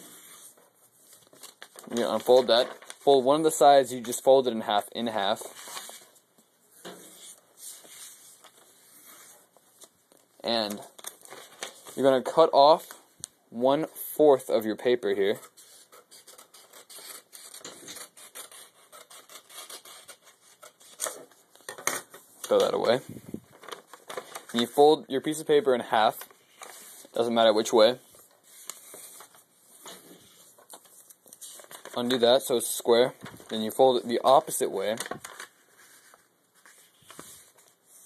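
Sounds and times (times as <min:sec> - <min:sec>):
paper rustling: 0:00.0 - 0:06.2, 0:06.8 - 0:13.1, 0:14.8 - 0:38.0
paper soft crackles: 0:00.2 - 0:04.4, 0:07.2 - 0:13.1, 0:22.4 - 0:38.0
scissors cutting paper: 0:15.9 - 0:21.2.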